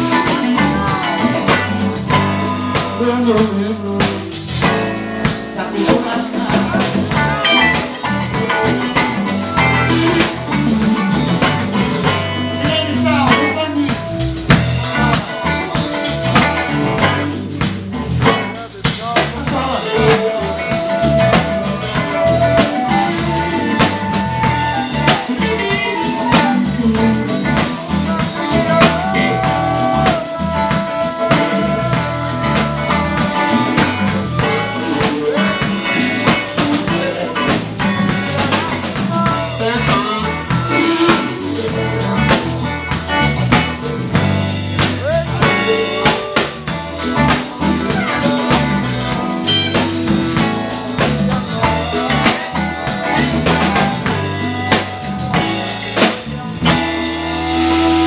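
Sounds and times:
bass guitar: 0:00.0 - 0:58.0
drum kit: 0:00.0 - 0:58.0
electric guitar: 0:00.0 - 0:58.0
harmonica bent notes: 0:07.2 - 0:43.3, 0:44.1 - 0:58.0.

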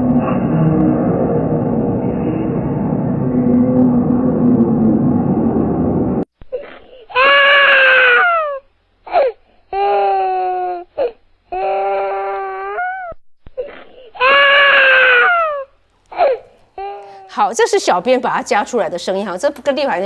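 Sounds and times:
drawn-out crying wails: 0:07.2 - 0:08.6, 0:14.2 - 0:17.2.

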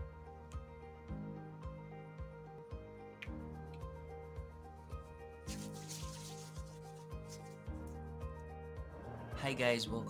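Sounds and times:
background music with steady beat: 0:00.0 - 0:10.0
hands rubbing together: 0:05.5 - 0:07.7.

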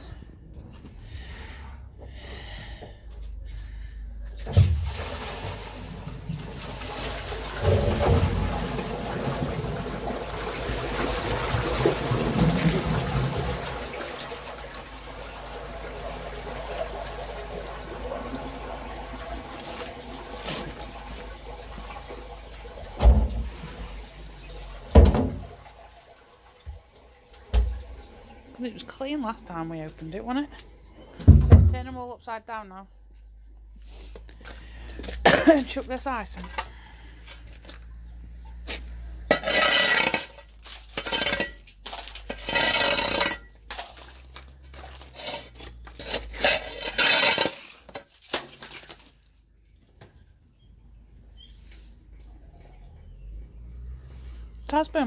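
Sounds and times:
waste water gushing into drain: 0:04.3 - 0:30.2, 0:34.4 - 0:50.4.

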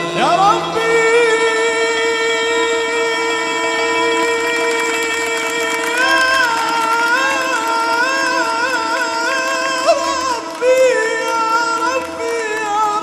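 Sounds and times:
ensemble with violins: 0:00.0 - 0:13.0
man singing folk song: 0:00.0 - 0:13.0.

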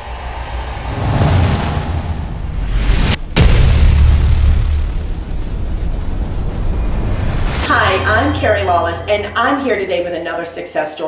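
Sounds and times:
deep rushing whoosh: 0:00.0 - 0:10.5.

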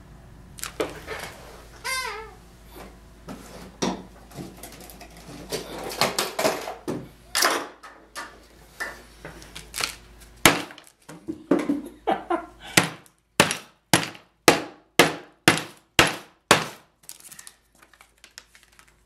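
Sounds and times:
wooden mallet pounding on board: 0:12.8 - 0:16.8.

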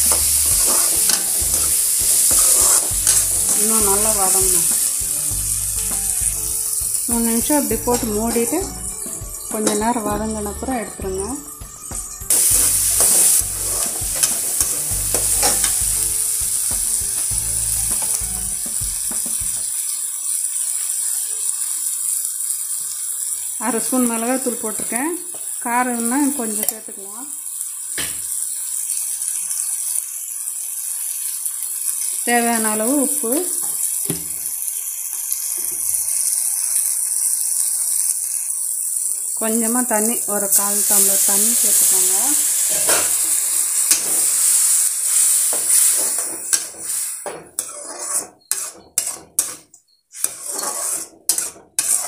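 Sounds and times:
steel ladle scraping a pan: 0:00.0 - 0:10.9, 0:12.3 - 0:19.3, 0:40.5 - 0:52.0
vegetables sizzling in hot oil: 0:00.0 - 0:52.0.

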